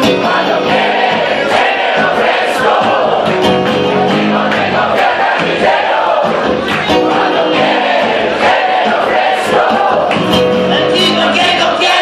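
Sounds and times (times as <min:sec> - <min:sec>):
crowd voices: 0:00.0 - 0:12.0
live rock band playing: 0:00.0 - 0:12.0.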